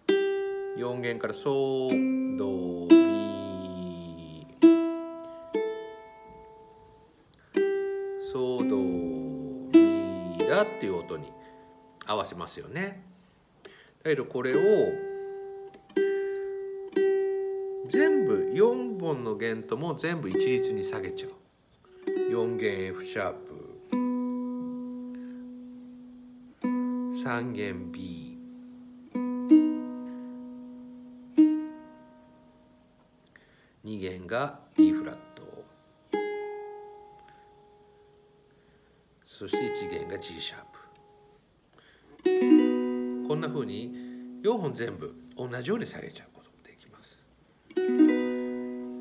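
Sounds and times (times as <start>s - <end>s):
ukulele strings plucked: 0.0s - 6.8s, 7.4s - 12.2s, 14.4s - 21.3s, 21.9s - 32.7s, 42.2s - 45.6s, 47.7s - 49.0s.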